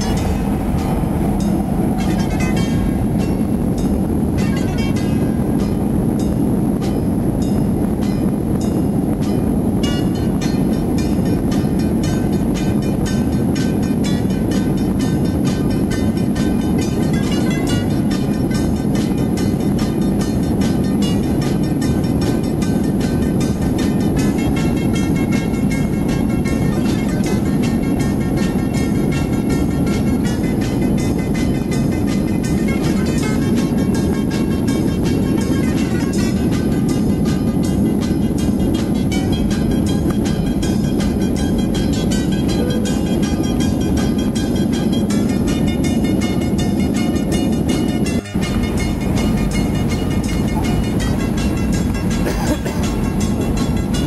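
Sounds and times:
jet engines rumbling in cabin: 0.0s - 54.0s
music with steady beat: 0.0s - 54.0s.

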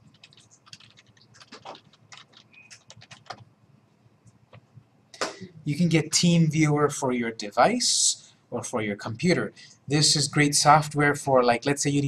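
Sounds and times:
keyboard typing: 0.0s - 3.5s.

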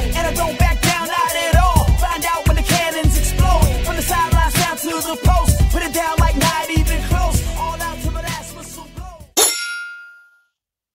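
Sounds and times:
metallic clang ringing: 9.4s - 10.4s.

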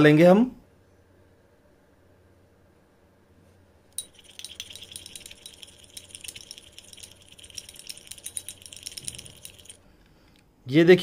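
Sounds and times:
spoon clinking in glass bowl: 4.0s - 9.8s.

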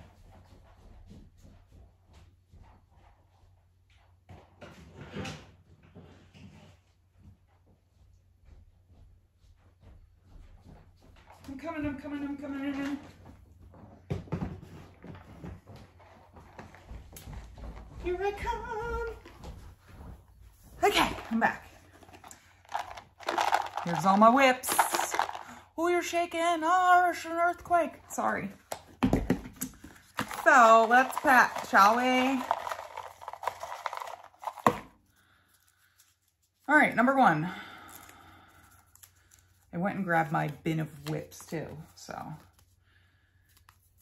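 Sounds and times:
footsteps and shuffles: 0.0s - 25.8s
paper slips rustling: 20.8s - 26.2s, 29.8s - 36.7s.

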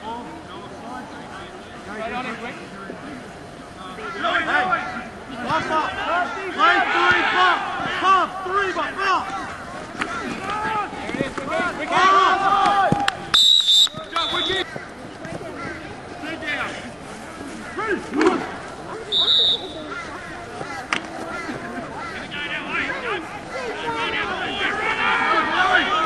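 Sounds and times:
players and spectators shouting: 3.8s - 16.9s, 17.5s - 26.0s
referee's whistle: 13.3s - 14.6s, 19.1s - 19.9s.

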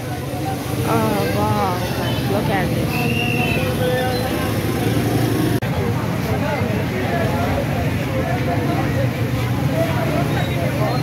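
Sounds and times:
babble of voices: 0.0s - 11.0s
motorcycle engines running: 0.0s - 11.0s.

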